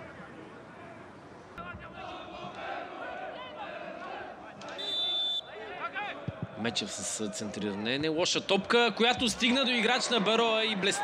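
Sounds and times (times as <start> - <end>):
players and crowd shouting: 0.1 - 11.0
referee's whistle blast: 4.8 - 5.5.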